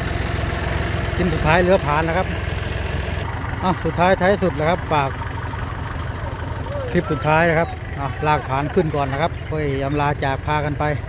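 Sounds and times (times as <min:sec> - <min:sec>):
tractor engine idling: 0:00.0 - 0:11.0.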